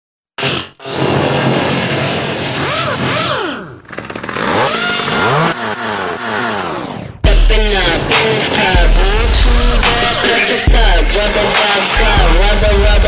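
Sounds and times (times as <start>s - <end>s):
power tool and engine whines: 0.5s - 7.2s
electronic rap track: 7.2s - 13.0s.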